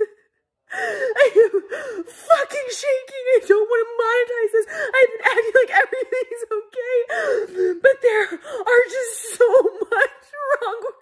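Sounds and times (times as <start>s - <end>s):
woman sobbing: 0.0s - 11.0s.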